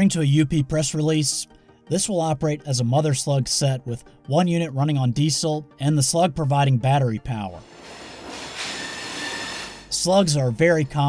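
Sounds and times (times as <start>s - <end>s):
hiss of rail noise: 7.6s - 9.9s
steel wheels squealing: 7.6s - 10.1s.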